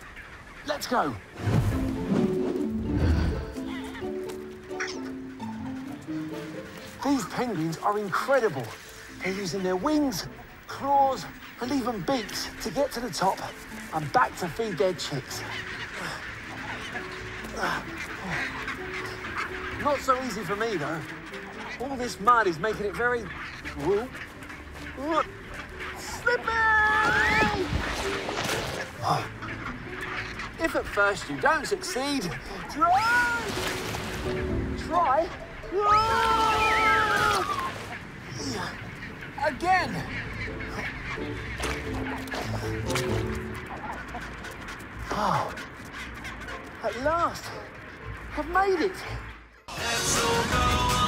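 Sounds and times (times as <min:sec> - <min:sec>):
background music: 0:00.0 - 0:51.0
penguin colony squawking: 0:00.0 - 0:51.0.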